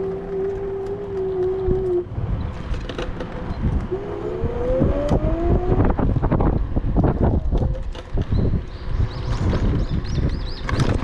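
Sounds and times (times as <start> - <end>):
scooter rattling over road: 0.0 - 11.0
wind rumbling on microphone: 0.0 - 11.0.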